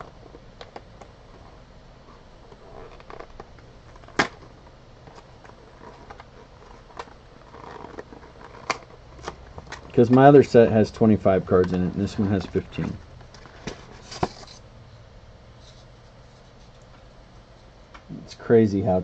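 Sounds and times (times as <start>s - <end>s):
cardboard and packaging rustling: 0.0s - 14.7s.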